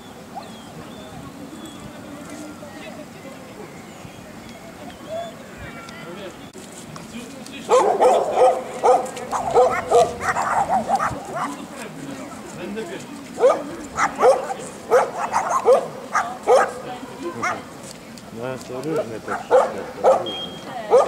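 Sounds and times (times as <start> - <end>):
dog barking: 7.7 - 11.6, 13.4 - 16.8, 17.4 - 17.6, 19.3 - 21.0.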